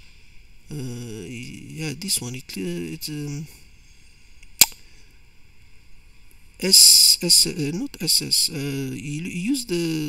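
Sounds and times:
faint background hiss: 0:00.0 - 0:10.0
sharp click: 0:04.4 - 0:04.8.

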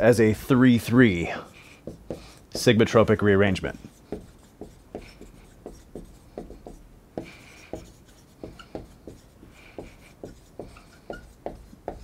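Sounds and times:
marker writing on a whiteboard: 0:00.0 - 0:12.0.

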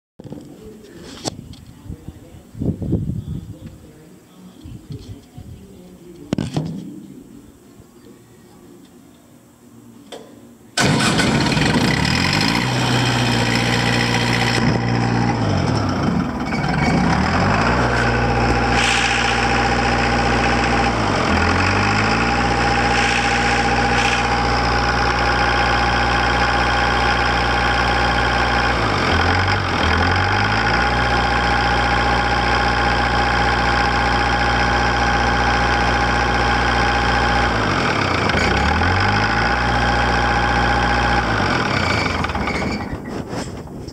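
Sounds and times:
diesel engine running: 0:10.8 - 0:43.1
high-pitched whine: 0:11.1 - 0:29.0.

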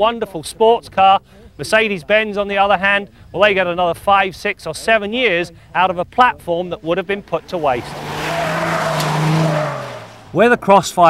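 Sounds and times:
sports car passing at speed: 0:07.2 - 0:10.4.

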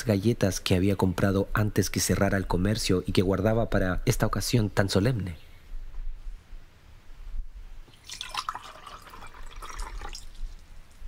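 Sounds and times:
liquid pouring into a glass: 0:07.9 - 0:10.6.

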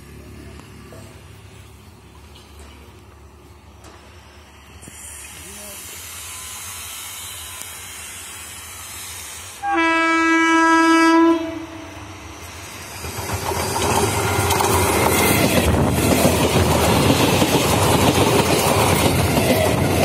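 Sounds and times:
train rushing noise: 0:02.8 - 0:20.0
train horn blast: 0:09.6 - 0:12.2
train wheels clattering over rail joints: 0:12.8 - 0:20.0.

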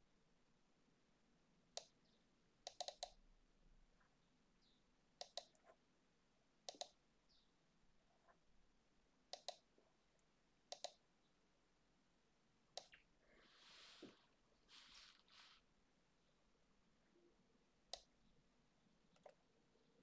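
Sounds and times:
computer mouse clicks: 0:01.8 - 0:02.0, 0:02.6 - 0:03.2, 0:05.2 - 0:05.8, 0:06.7 - 0:07.0, 0:09.3 - 0:11.0, 0:12.8 - 0:13.1, 0:17.9 - 0:18.1, 0:19.1 - 0:19.4.

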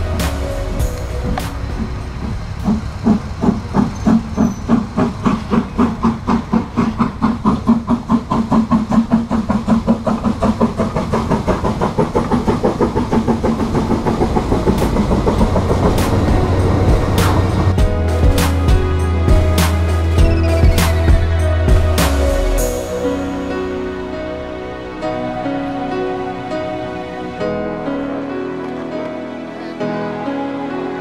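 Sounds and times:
steam locomotive exhaust beats: 0:00.0 - 0:24.0.

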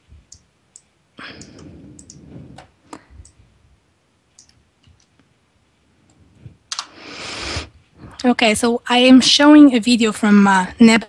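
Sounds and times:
computer mouse clicks: 0:00.3 - 0:03.4, 0:04.3 - 0:05.3, 0:06.1 - 0:07.0
rustling noise: 0:01.6 - 0:03.2.

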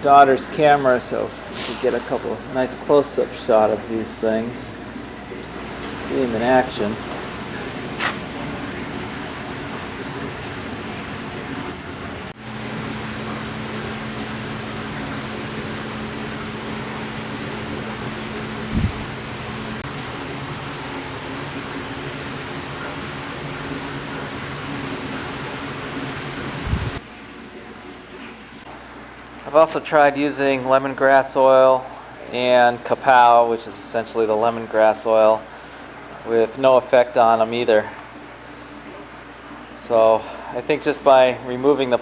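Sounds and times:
fan running: 0:00.0 - 0:22.7, 0:24.4 - 0:42.0
low hum: 0:02.4 - 0:11.8, 0:24.8 - 0:29.2.

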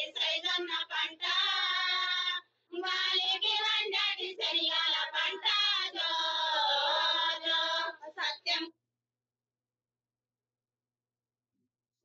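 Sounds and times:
women singing: 0:00.0 - 0:08.7.

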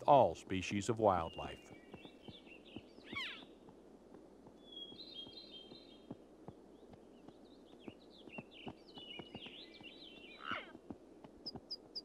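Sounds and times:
small bird trilling: 0:03.0 - 0:03.5.

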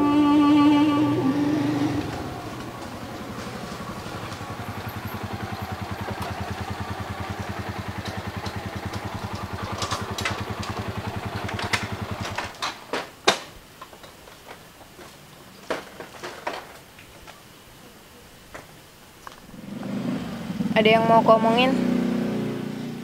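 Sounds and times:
small motorcycle engine running: 0:00.0 - 0:12.8, 0:19.5 - 0:23.0.

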